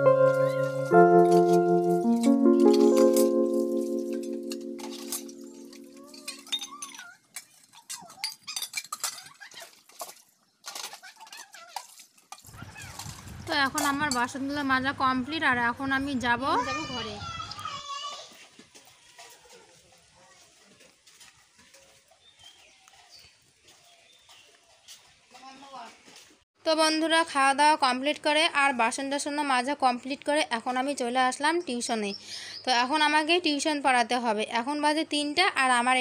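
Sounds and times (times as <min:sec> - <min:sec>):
steel dishes clinking and clattering: 0:06.1 - 0:09.5.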